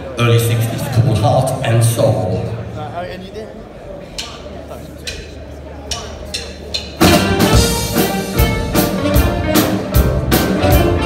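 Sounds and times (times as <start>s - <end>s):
live r and b band playing: 5.9s - 11.0s.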